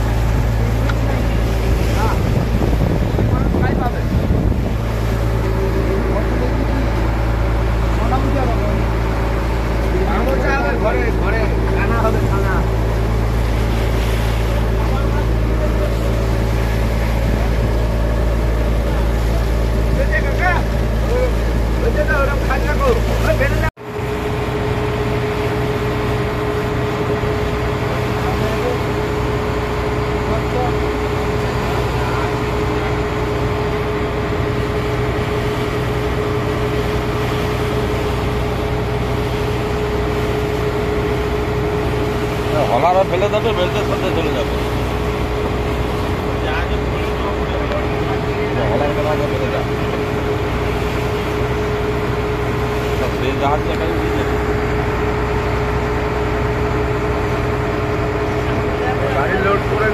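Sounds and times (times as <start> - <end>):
boat engine droning: 0.0 - 59.9.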